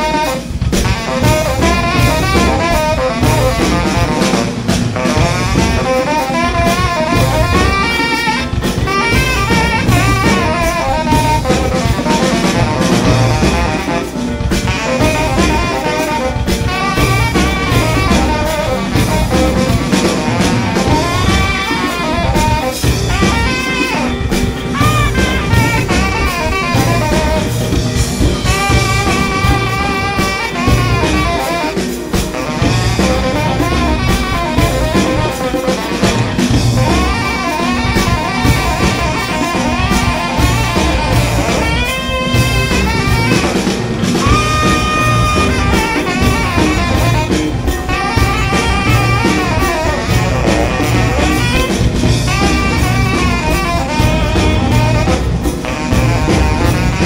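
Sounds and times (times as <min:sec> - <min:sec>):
drum kit: 0:00.0 - 0:57.0
live jazz band playing: 0:00.0 - 0:57.0
saxophone melody: 0:00.0 - 0:57.0.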